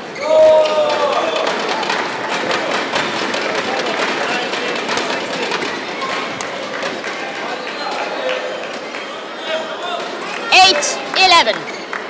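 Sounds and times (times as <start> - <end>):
murmur of voices: 0.0 - 12.0
sports hall ambience: 0.0 - 12.0.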